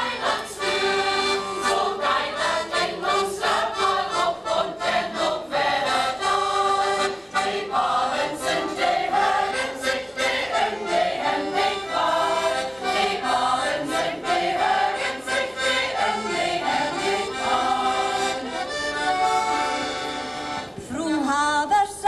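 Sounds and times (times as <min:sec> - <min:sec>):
mixed choir singing: 0:00.0 - 0:19.9
piano accordion: 0:00.0 - 0:21.4.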